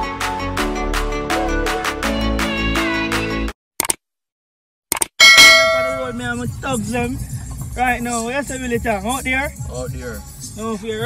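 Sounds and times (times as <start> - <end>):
notification bell ding: 5.2 - 6.2.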